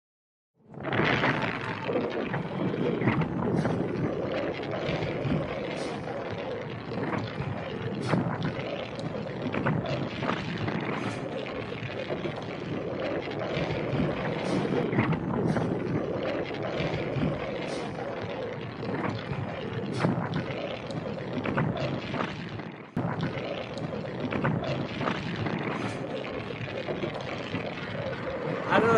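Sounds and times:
wind on microphone: 0.8s - 28.9s.

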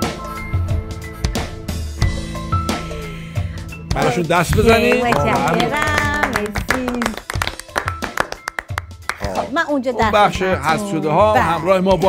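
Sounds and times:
background music: 0.0s - 12.0s
people clapping: 4.0s - 9.5s.

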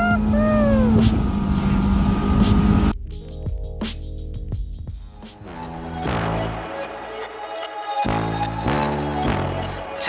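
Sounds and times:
person calling out: 0.0s - 1.0s
outboard motor running: 0.0s - 2.9s
background music: 2.3s - 10.0s.

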